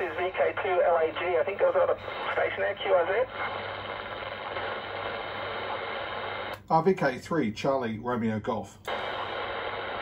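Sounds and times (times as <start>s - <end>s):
radio static hiss: 0.0s - 6.6s, 8.9s - 10.0s.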